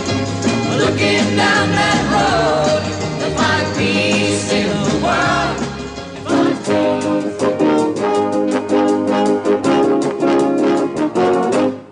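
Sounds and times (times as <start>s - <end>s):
brass and band playing chords: 0.0s - 11.9s
drums: 0.0s - 11.9s.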